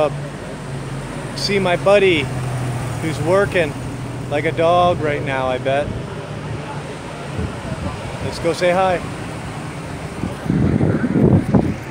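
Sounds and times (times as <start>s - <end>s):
low outdoor rumble: 0.0s - 11.9s
wind buffeting microphone: 3.9s - 11.9s.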